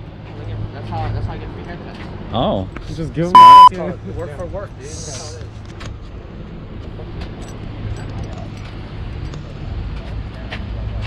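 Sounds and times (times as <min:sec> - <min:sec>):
outdoor noise: 0:00.0 - 0:11.0.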